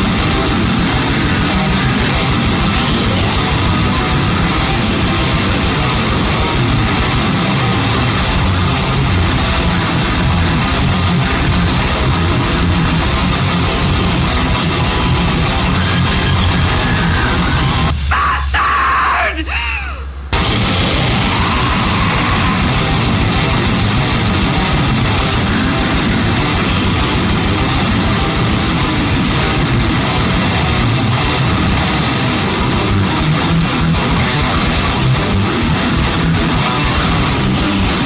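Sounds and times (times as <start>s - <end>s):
low drone: 0.0s - 30.7s
metal band playing: 0.0s - 38.0s.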